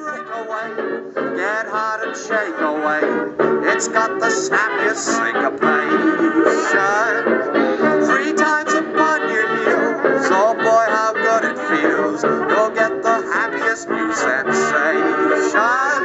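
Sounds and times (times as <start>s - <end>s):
band accompaniment: 0.0s - 16.0s
man singing through a megaphone: 0.0s - 16.0s.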